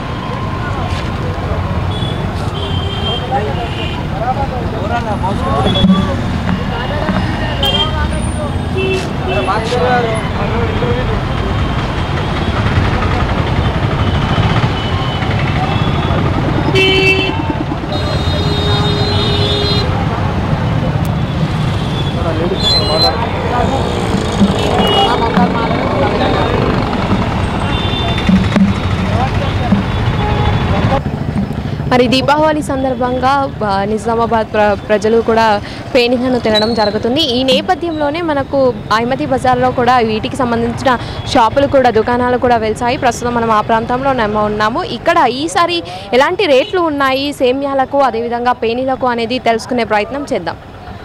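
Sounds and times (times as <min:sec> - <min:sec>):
motorbikes passing: 0:00.0 - 0:51.0
vehicle horns tooting: 0:01.9 - 0:04.2, 0:05.3 - 0:12.6, 0:13.6 - 0:20.0, 0:21.2 - 0:31.0
people talking: 0:03.0 - 0:11.4, 0:22.2 - 0:31.0, 0:31.9 - 0:51.0.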